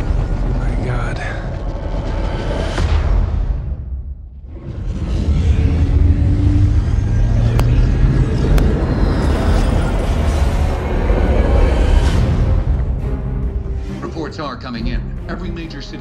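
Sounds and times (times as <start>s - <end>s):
ominous film score: 0.0s - 16.0s
deep low rumble: 4.1s - 13.8s.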